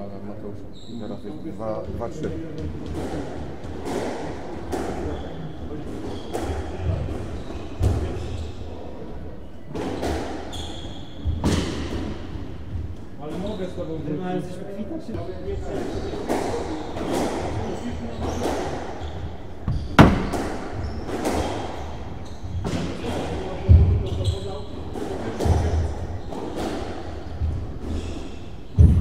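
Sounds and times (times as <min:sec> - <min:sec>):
squash ball hits echoing: 0:11.3 - 0:12.2, 0:19.7 - 0:21.8, 0:28.7 - 0:29.0.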